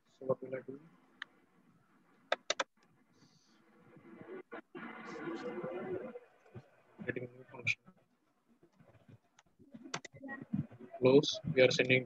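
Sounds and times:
keyboard key clicks: 2.3 - 2.7.

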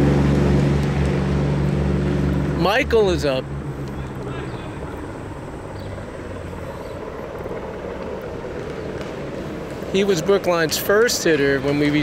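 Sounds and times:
distant engine rumble: 0.0 - 12.0.

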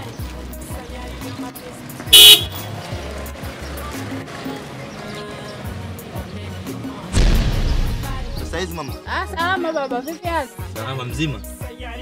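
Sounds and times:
background music with low beat: 0.0 - 12.0
car horn toot: 2.1 - 2.6.

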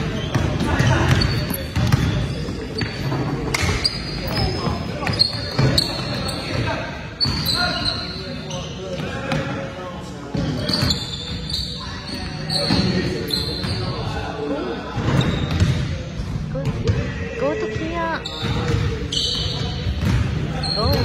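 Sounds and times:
players' voices echoing: 0.0 - 21.0
sneakers squeaking: 0.0 - 21.0.

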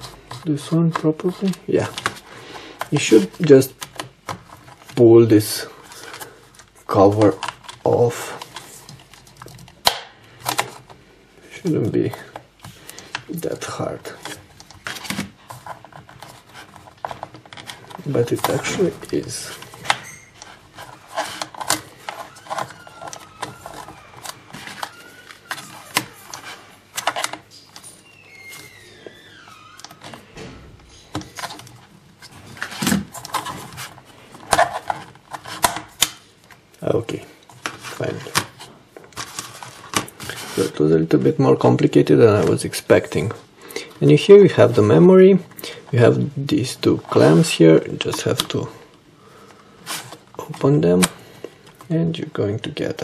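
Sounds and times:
fingers tapping and scraping plastic: 5.9 - 11.0, 12.0 - 27.9.

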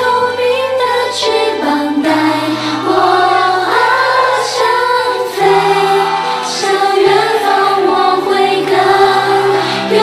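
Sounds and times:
group of women singing pop song: 0.0 - 10.0.

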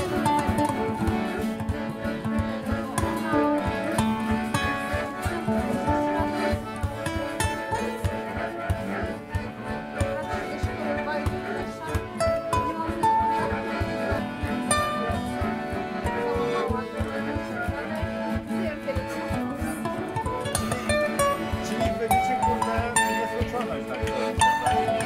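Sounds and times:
accordion: 0.0 - 25.0
acoustic guitar: 0.0 - 25.0
hand drum beat: 0.0 - 25.0.

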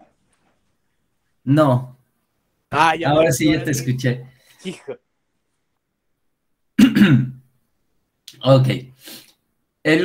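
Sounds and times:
man clearing his throat: 6.8 - 7.4.

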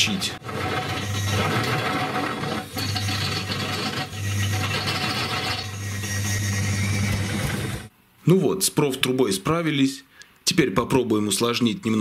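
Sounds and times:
drill bit rasping into steel: 0.4 - 7.9
motor hum: 0.4 - 7.9.

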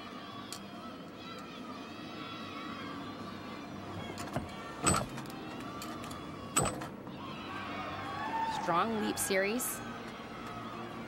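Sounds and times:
arena crowd murmur: 0.0 - 11.0.

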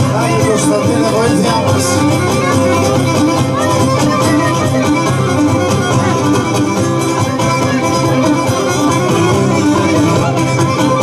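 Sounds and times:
strummed guitar: 0.0 - 11.0.

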